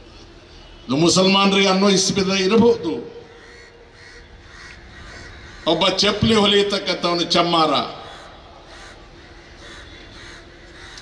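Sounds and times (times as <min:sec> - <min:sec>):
open-air background: 0:00.0 - 0:11.0
bird calls: 0:03.2 - 0:05.8.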